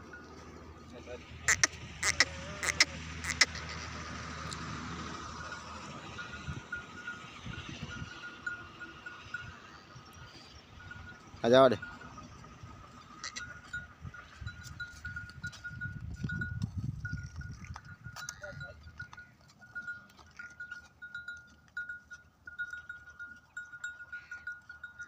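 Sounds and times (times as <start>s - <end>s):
low rumble: 0.0s - 19.0s
small bell clinking: 13.3s - 25.0s.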